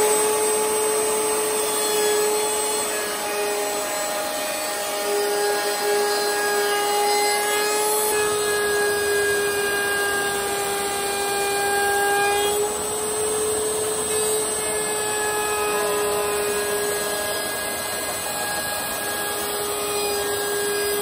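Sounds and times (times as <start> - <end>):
router cutting wood: 0.0 - 21.0.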